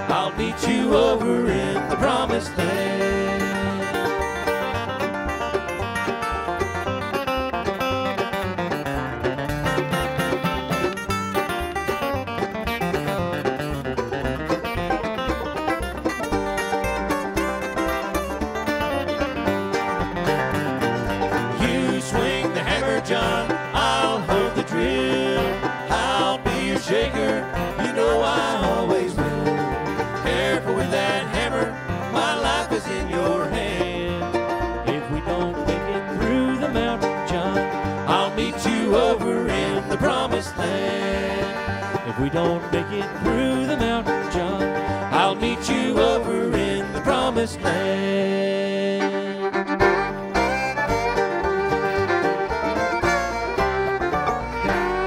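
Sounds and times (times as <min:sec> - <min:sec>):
acoustic bluegrass band playing: 0:00.0 - 0:55.0.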